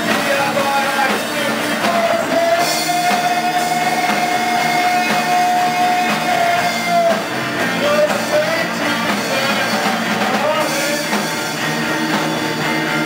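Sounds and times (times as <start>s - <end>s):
punk-blues band playing: 0.0s - 13.0s.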